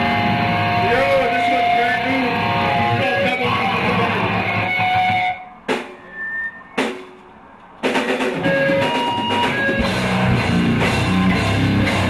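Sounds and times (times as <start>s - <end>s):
loud rock band playing: 0.0s - 7.2s, 7.8s - 12.0s
sharp drum hits: 6.8s - 7.2s.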